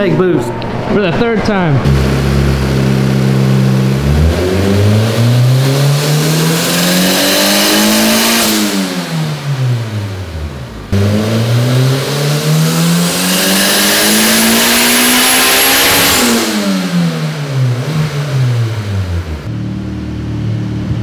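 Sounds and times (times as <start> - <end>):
engine revving under load: 0.0 - 21.0.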